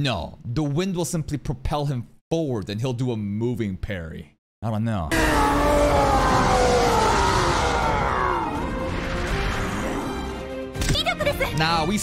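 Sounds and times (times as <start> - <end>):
monster roar: 5.1 - 10.4.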